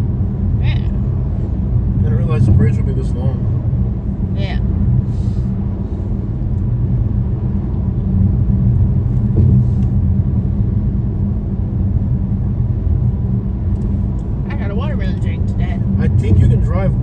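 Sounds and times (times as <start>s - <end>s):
car driving over bridge: 0.0s - 17.0s.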